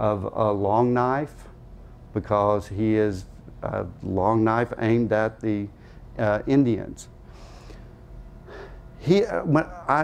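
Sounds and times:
low room hum: 0.0s - 10.0s
man breathing in: 5.8s - 6.1s, 7.2s - 8.9s.

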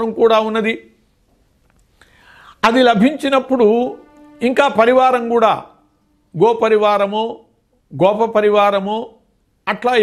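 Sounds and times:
man talking: 0.0s - 1.0s, 2.6s - 10.0s
faint in-breath: 2.0s - 2.6s.

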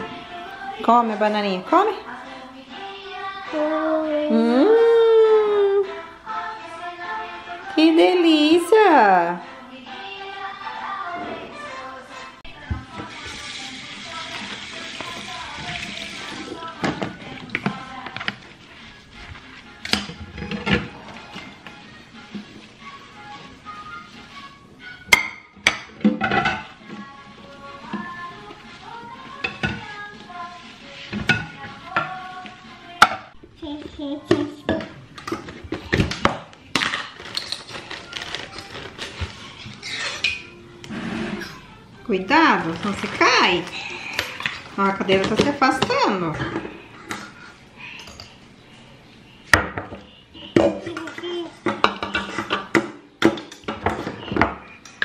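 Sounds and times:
background music: 0.0s - 55.0s
dishes clattering in sink: 25.1s - 26.8s, 34.3s - 38.0s, 49.5s - 55.0s.

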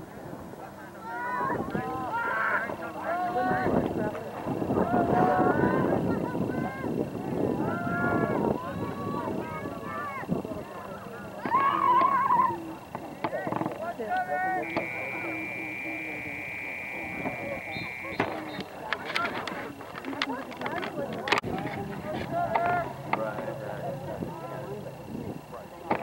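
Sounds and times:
spectators talking and calling out: 0.0s - 26.0s
steady high tone: 13.9s - 25.9s.

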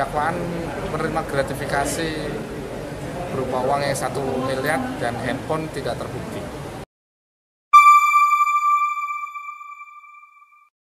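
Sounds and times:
bright electronic chime ringing: 7.8s - 10.7s.

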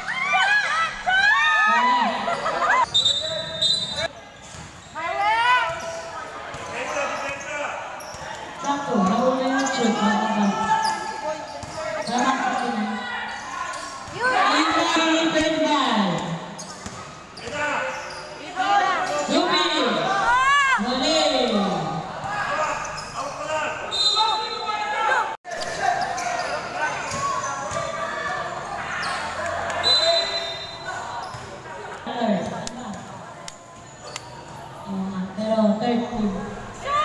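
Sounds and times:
people calling and shouting: 0.0s - 37.0s.

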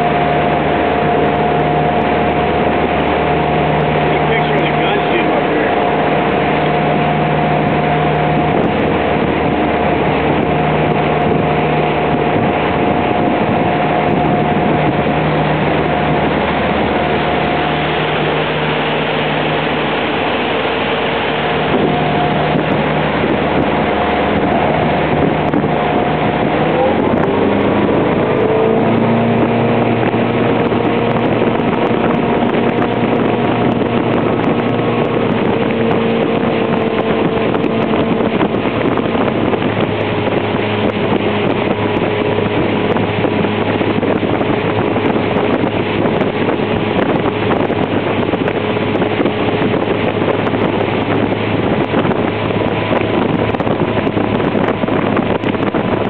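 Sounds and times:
boat motor running: 0.0s - 56.0s
wind buffeting microphone: 0.0s - 56.0s.

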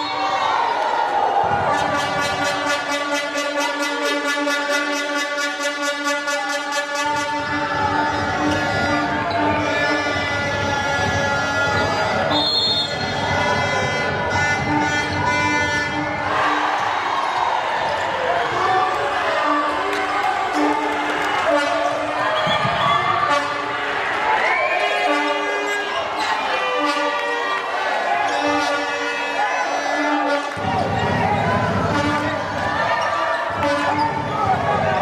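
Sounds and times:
people shouting in echoing hall: 0.0s - 35.0s.

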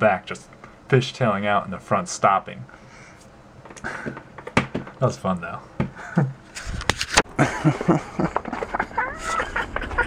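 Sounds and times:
knocks: 4.0s - 5.0s
man laughing: 5.9s - 6.4s, 7.3s - 10.0s.

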